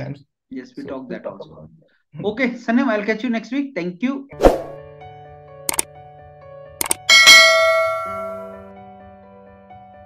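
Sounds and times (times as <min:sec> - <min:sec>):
background music: 0:04.2 - 0:10.0
notification bell ringing: 0:06.8 - 0:08.6.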